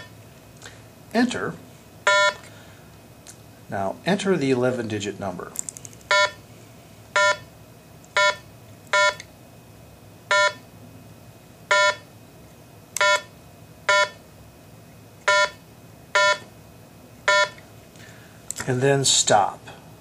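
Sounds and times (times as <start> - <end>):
keypad beeps: 6.1 - 6.4, 8.2 - 9.2, 13.0 - 13.3, 17.3 - 17.6.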